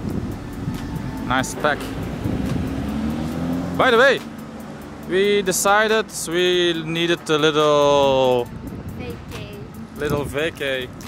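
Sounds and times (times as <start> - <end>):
car engine at low revs: 0.0 - 5.9.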